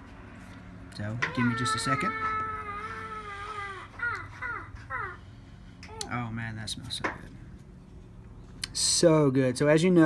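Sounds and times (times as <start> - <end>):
short falling cries: 1.2 - 5.3.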